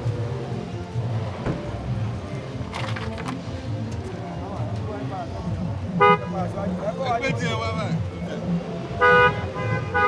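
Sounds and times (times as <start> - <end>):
car horn toot: 6.0 - 6.4, 9.0 - 10.0.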